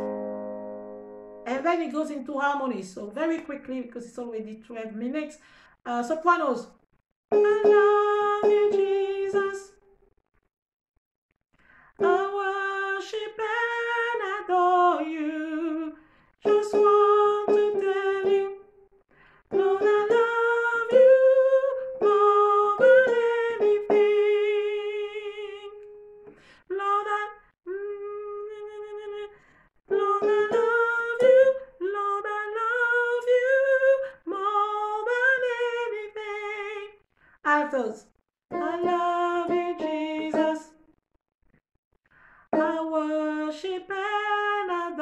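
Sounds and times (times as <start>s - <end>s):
woman singing with vibrato: 7.3s - 9.8s, 12.0s - 18.6s, 19.5s - 25.8s, 26.6s - 29.3s, 29.9s - 40.8s, 42.5s - 45.0s.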